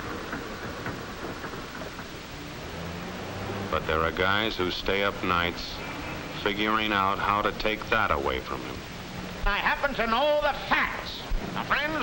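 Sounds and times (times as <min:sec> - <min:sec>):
film soundtrack rumble and hiss: 0:00.0 - 0:12.0.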